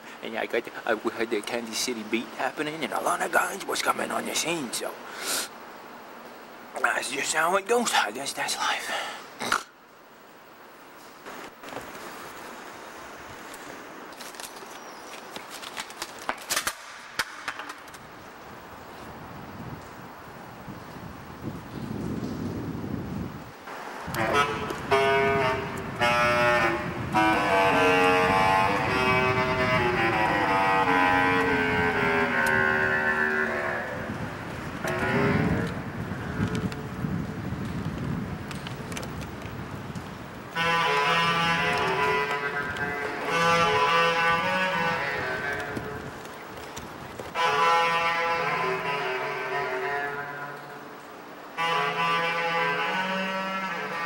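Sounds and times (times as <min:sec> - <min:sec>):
bass clarinet playing: 0:24.1 - 0:37.0, 0:40.5 - 0:46.3, 0:47.3 - 0:54.0.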